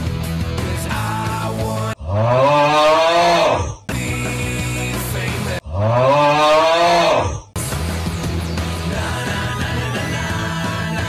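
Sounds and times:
rock guitar music: 0:00.0 - 0:01.9, 0:07.6 - 0:11.0
deep drawn-out groan: 0:01.9 - 0:03.8, 0:05.6 - 0:07.5.

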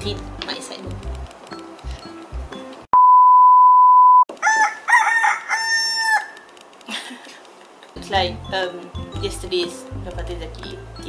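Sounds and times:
loud electronic beep: 0:03.0 - 0:04.3
rooster crowing: 0:04.4 - 0:06.5.

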